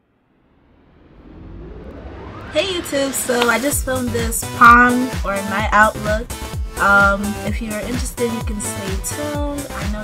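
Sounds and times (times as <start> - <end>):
whoosh with rising sweep: 0.0 - 4.6.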